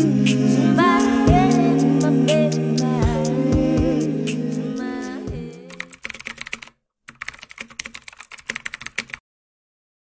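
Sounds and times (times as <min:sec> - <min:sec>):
sung music track: 0:00.0 - 0:05.9
computer keyboard typing clicks: 0:05.7 - 0:09.2.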